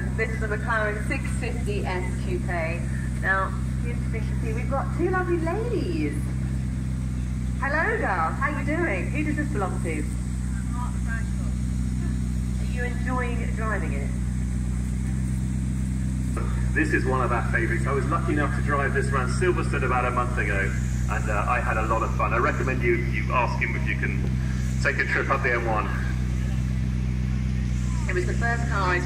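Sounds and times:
car engine idling: 0:00.0 - 0:29.0.

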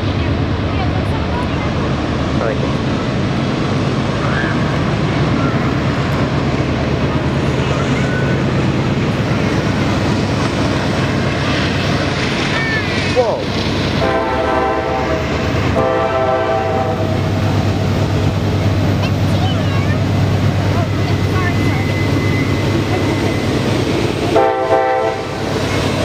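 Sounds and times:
diesel locomotives droning: 0:00.0 - 0:26.0
locomotive horn blasts: 0:14.0 - 0:17.2, 0:24.3 - 0:25.4.

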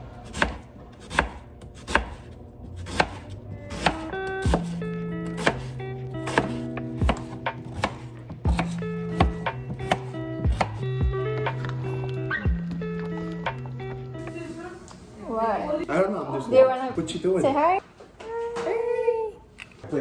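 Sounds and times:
background music: 0:00.2 - 0:16.7.

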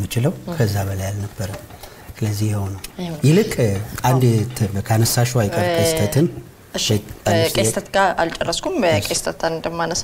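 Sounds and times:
man speaking with held syllables: 0:02.4 - 0:07.7.

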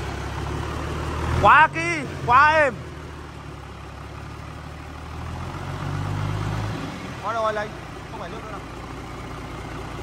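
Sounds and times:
truck diesel engine idling: 0:00.0 - 0:10.0.

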